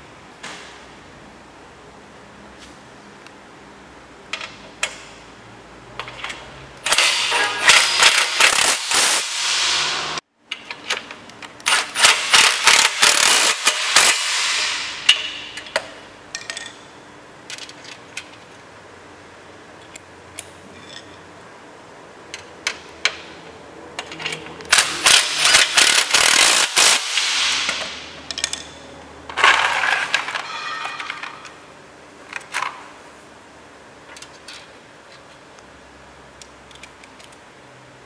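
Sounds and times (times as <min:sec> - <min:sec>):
metal parts clicking and tapping: 0:04.3 - 0:05.2, 0:06.0 - 0:09.2, 0:10.5 - 0:18.6, 0:19.8 - 0:21.2, 0:22.3 - 0:31.6, 0:34.0 - 0:35.4, 0:36.7 - 0:37.4.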